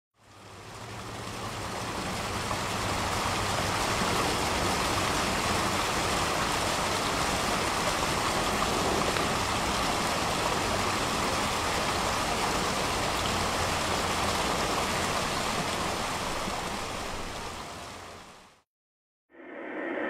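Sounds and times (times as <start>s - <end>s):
water splashing down rock waterfall: 0.2s - 18.6s.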